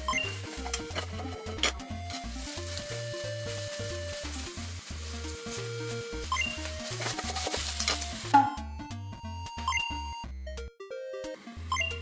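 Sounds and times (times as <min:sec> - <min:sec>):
eggplant sizzling in oil: 0:00.0 - 0:08.4
background music: 0:00.0 - 0:12.0.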